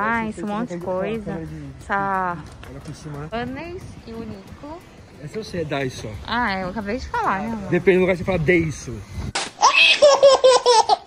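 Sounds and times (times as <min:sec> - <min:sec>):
baby laughing: 0:09.6 - 0:11.0.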